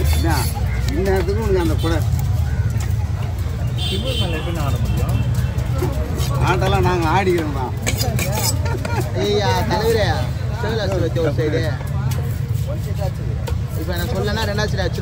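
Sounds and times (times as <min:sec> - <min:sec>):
low rumble of market noise: 0:00.0 - 0:15.0
people talking: 0:00.0 - 0:15.0.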